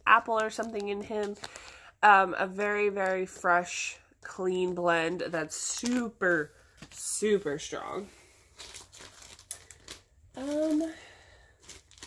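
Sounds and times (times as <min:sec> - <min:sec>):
plastic packaging crinkling: 0:00.2 - 0:01.9, 0:05.5 - 0:12.0.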